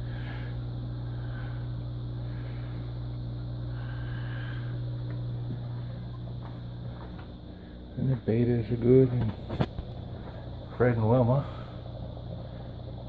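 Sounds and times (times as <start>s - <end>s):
air pump humming: 0.0s - 13.0s.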